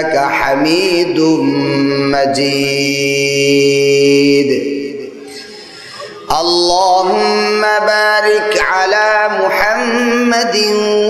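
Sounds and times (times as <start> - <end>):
man chanting melodically: 0.0 - 11.0.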